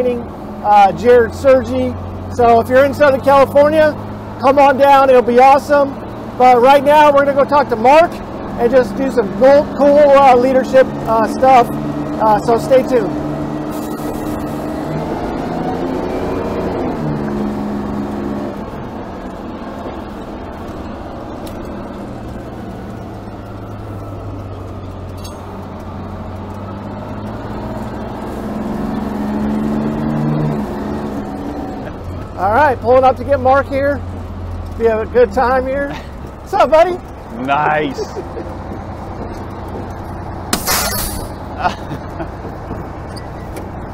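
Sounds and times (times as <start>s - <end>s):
diesel engine pulling truck: 0.0s - 43.9s.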